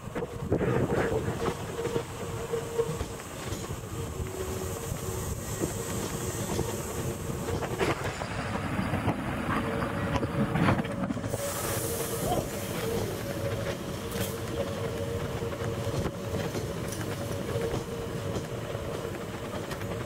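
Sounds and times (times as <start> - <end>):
train rolling rumble: 0.0 - 20.0
train wheels clicking over rail joints: 0.1 - 20.0.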